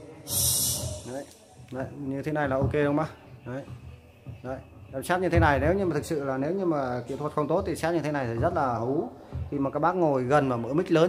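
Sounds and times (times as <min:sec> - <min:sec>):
man's vocal sounds with reverb: 0:00.0 - 0:03.7
breathy hiss into microphone: 0:00.2 - 0:01.3.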